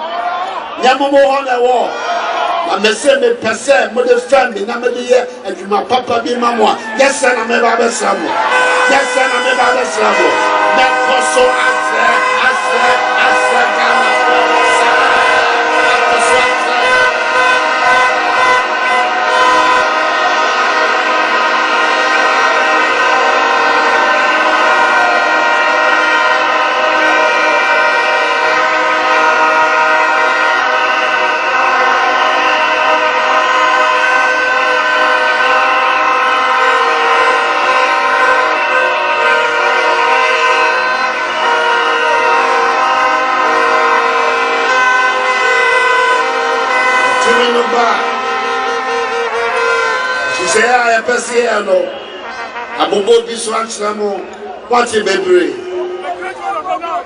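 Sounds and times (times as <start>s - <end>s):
crowd blowing plastic horns: 0.0s - 57.0s.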